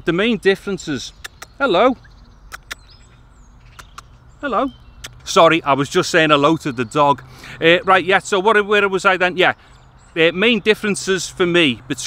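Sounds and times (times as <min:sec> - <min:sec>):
faint bird chirp: 0:00.0 - 0:12.0
sharp clicks: 0:01.1 - 0:01.7, 0:02.5 - 0:04.2, 0:05.0 - 0:05.4.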